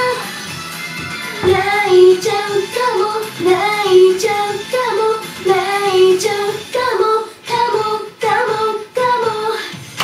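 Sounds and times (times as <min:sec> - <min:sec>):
backing track: 0:00.0 - 0:08.6
high female vocals singing: 0:01.2 - 0:09.9.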